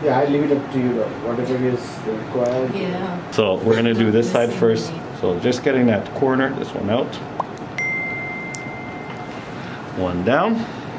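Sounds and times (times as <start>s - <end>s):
steady background hiss: 0.0s - 10.9s
high ringing tone: 7.7s - 9.8s.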